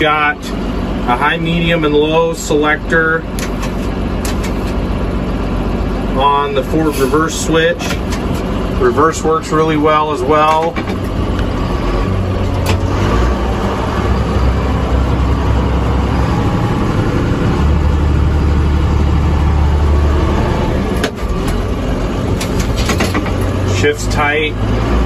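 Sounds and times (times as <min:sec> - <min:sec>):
tractor diesel engine running: 0:00.0 - 0:25.0.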